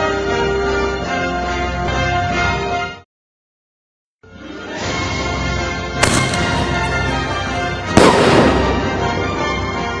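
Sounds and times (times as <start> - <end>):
background music: 0.0 - 3.0, 4.2 - 10.0
firework shell bursting: 6.0 - 9.1
firework tube firing: 6.0 - 9.2.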